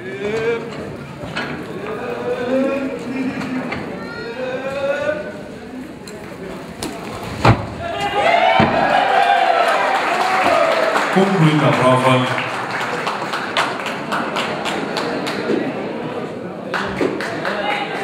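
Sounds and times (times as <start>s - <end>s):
voices and calls in a hall: 0.0s - 18.0s.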